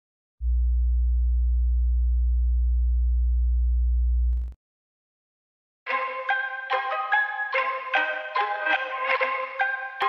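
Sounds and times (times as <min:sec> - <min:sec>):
deep electronic hum: 0:00.4 - 0:04.6.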